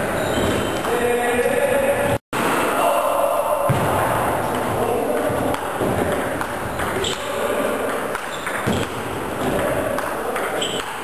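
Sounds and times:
ping pong ball hitting bats: 4.5s - 11.0s.

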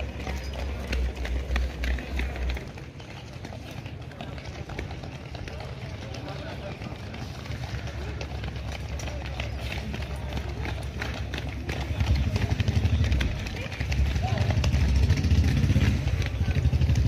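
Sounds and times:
footfalls on asphalt: 0.0s - 17.0s
unclear voices: 0.0s - 17.0s
vehicle engine rumble: 0.0s - 17.0s.

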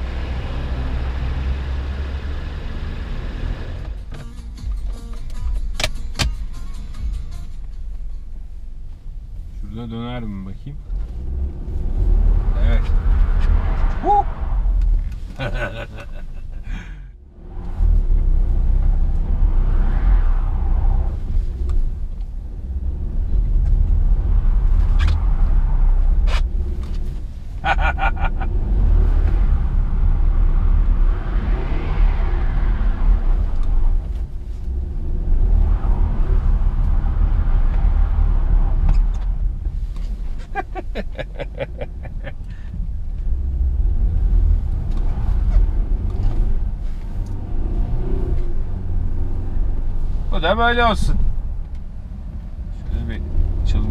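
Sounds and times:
engine revving: 0.0s - 4.0s, 10.9s - 16.4s, 17.1s - 53.9s
car engine and road rumble: 0.0s - 53.9s.

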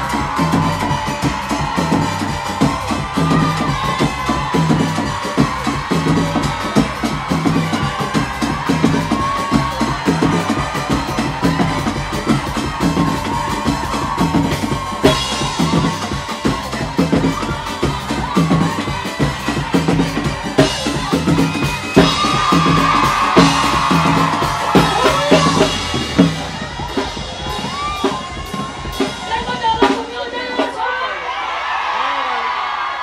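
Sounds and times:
heavy bass line: 0.0s - 30.0s
hand drums and drum kit: 0.0s - 30.8s.

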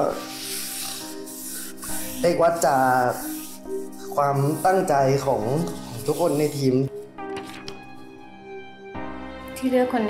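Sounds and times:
soft background music: 0.0s - 10.0s
paper rustling: 0.4s - 7.9s.

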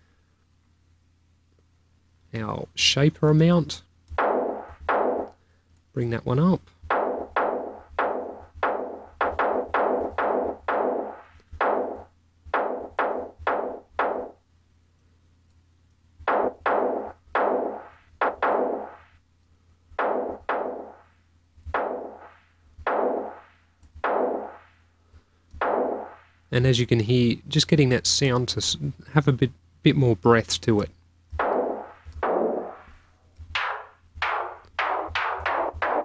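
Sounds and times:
snare drum hits: 4.2s - 5.4s, 6.9s - 14.4s, 16.3s - 19.0s, 20.0s - 21.0s, 21.8s - 24.7s, 31.4s - 33.0s, 33.6s - 36.0s.

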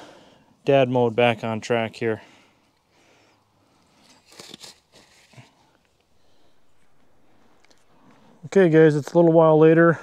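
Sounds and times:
faint steady hiss: 0.0s - 10.0s
disposable gloves crinkly snaps: 3.8s - 6.1s.

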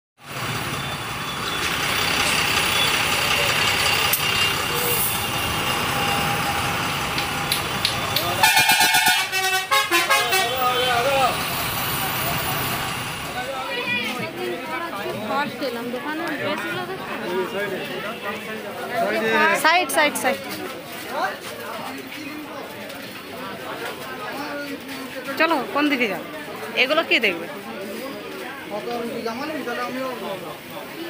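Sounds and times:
crowd noise: 0.2s - 31.0s
dense street traffic: 0.2s - 31.0s
voices: 0.8s - 31.0s
pulsing vehicle horn: 4.1s - 6.8s, 8.2s - 11.3s.

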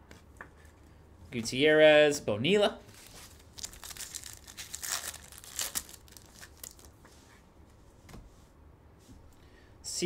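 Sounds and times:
foil wrapper tearing and crinkling: 3.0s - 6.9s.

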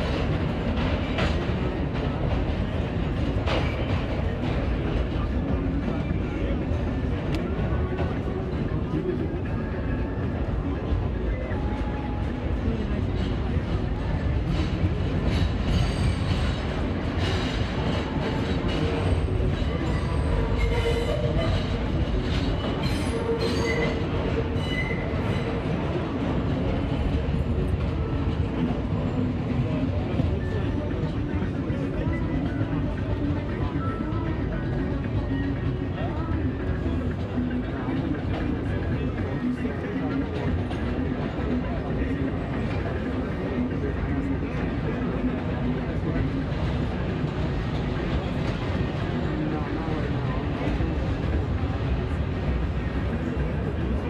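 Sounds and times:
subway train wheels rumbling on rail: 0.0s - 54.0s
high wheel squeals: 22.7s - 25.5s.

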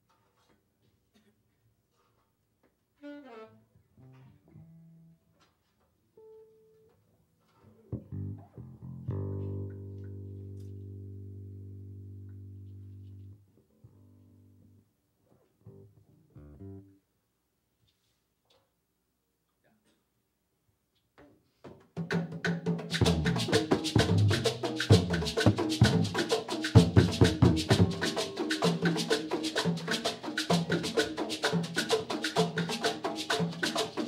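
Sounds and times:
saxophone notes: 3.0s - 5.1s
electric bass notes: 7.9s - 14.8s, 15.6s - 17.0s, 23.0s - 26.1s.

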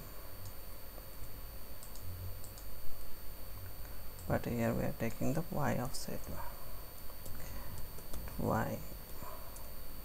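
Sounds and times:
keyboard and mouse clicks: 1.8s - 2.7s.

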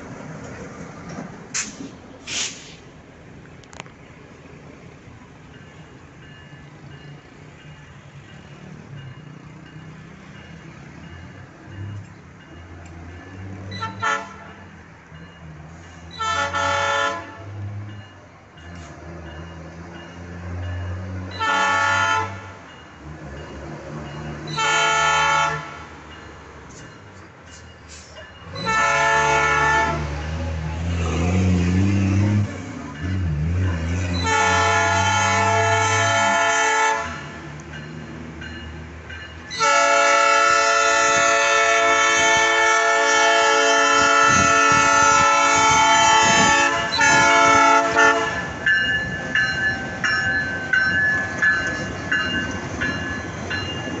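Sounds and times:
locomotive air horn blasts: 13.8s - 14.6s, 16.2s - 17.6s, 21.4s - 22.6s, 24.5s - 25.9s, 28.6s - 30.2s, 34.2s - 37.4s, 39.6s - 48.5s.

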